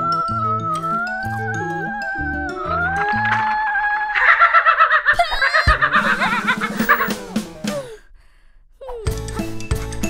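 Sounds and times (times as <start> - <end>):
high-pitched cartoon voice: 0.0 - 3.3
music: 0.0 - 3.6, 5.7 - 8.0, 9.0 - 10.0.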